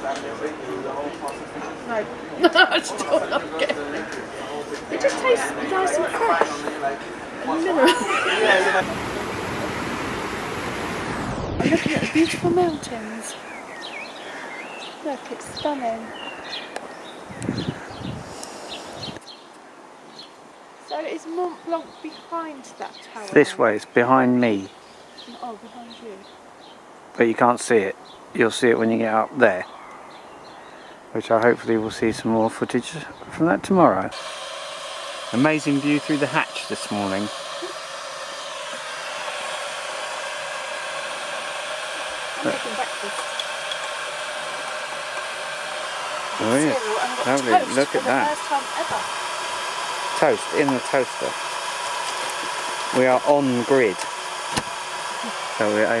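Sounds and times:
outdoor background noise: 0.0 - 56.0
blower whooshing hiss: 2.5 - 19.2, 33.6 - 56.0
low rumbling noise: 8.8 - 14.8
small birds chirping: 11.7 - 27.2, 27.8 - 33.8.

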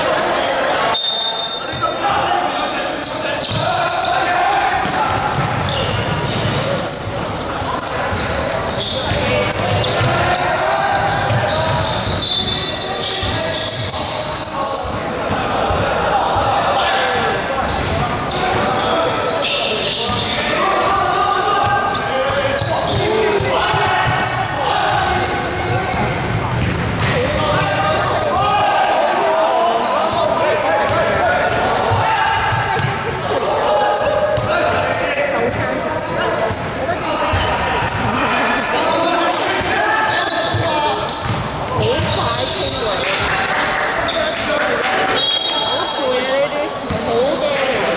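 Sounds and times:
voices calling out: 0.0 - 47.9
basketball bouncing on wooden floor: 25.9 - 27.6, 41.2 - 42.3.

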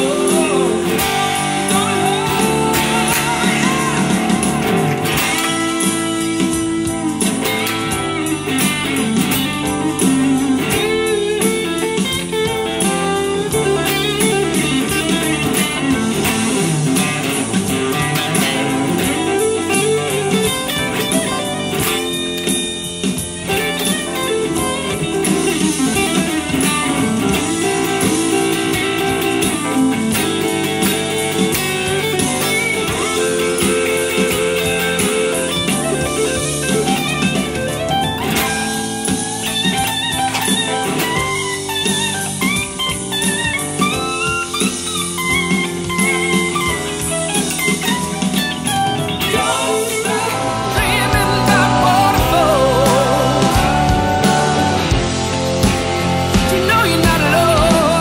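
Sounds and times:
electric guitar lead playing: 0.0 - 58.0.

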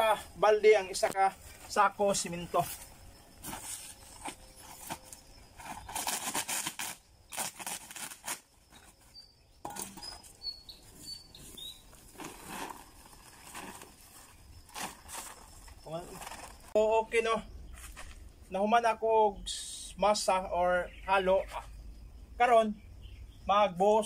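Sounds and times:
paper sack rustling and crinkling: 0.9 - 9.1, 9.7 - 16.8
bird chirps: 8.7 - 12.1, 19.3 - 24.0.

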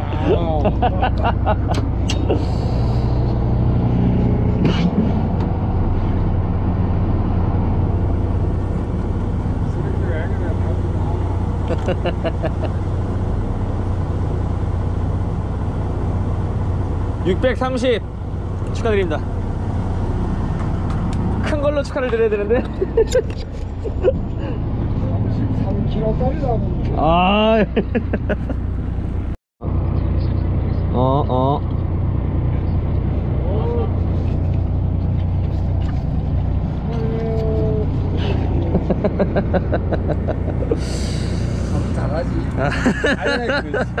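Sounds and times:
people laughing: 0.0 - 2.4, 11.6 - 12.8, 22.5 - 24.6, 27.6 - 28.6, 38.2 - 40.9, 42.4 - 44.0
voices: 0.0 - 2.6, 30.0 - 31.8, 36.9 - 44.0
boat engine idling: 0.0 - 44.0.

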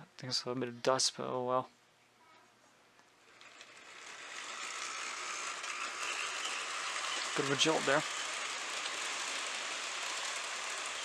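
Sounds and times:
model train motor and wheels: 3.2 - 11.0.

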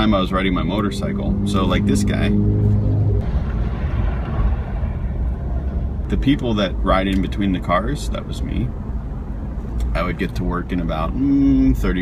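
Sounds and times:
road and engine noise in car cabin: 0.0 - 12.0.

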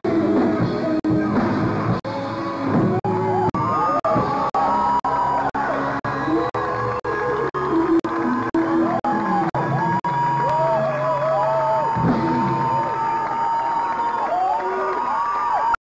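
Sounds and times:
live hard rock band: 0.1 - 13.5
crowd cheering: 2.2 - 15.8.

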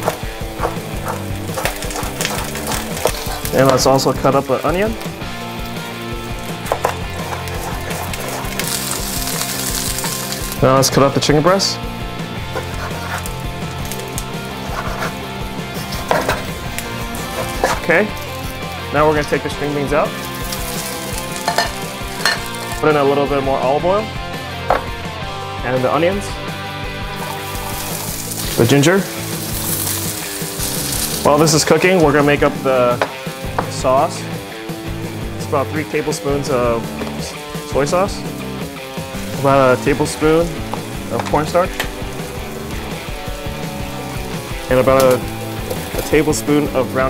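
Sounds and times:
frying hiss: 0.0 - 11.2, 12.4 - 22.8, 27.0 - 33.4, 36.2 - 47.0
background music: 0.0 - 47.0.

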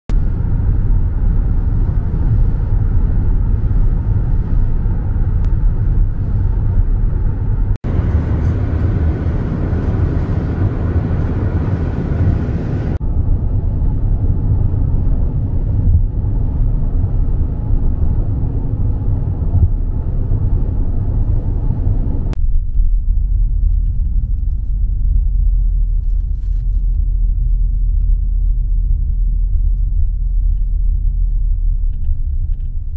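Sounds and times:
road and engine noise in car: 0.1 - 32.9.

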